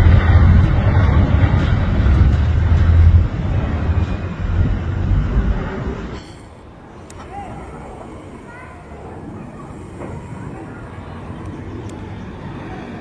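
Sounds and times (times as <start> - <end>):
jet aircraft passing overhead: 0.0 - 13.0.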